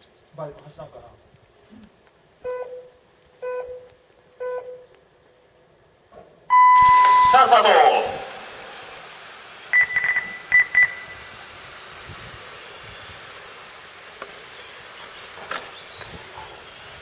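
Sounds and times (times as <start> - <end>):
short electronic beeps: 2.4 - 4.9, 6.5 - 7.8, 9.7 - 11.2
rc car motors whining: 6.8 - 17.0.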